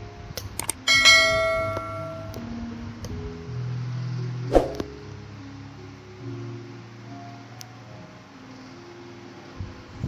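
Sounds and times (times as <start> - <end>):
notification bell chime: 0.9 - 2.4.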